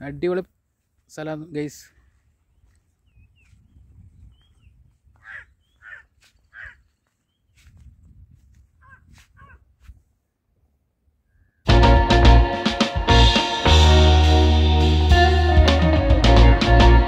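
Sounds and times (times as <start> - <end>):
wind rumble on microphone: 3.1 - 5.3, 7.6 - 10.0
crows cawing: 5.2 - 6.9, 8.8 - 9.6.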